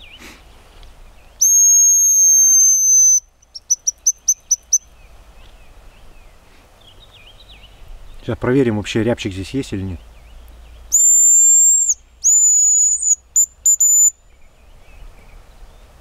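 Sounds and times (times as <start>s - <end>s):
faint songbirds chirping: 0.0s - 16.0s
decoy whistle blown by mouth: 1.4s - 3.2s, 11.0s - 14.2s.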